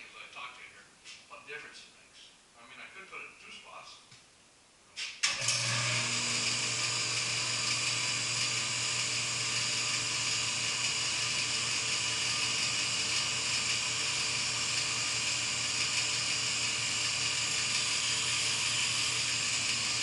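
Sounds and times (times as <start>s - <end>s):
power tool motor whirring: 5.3s - 20.0s.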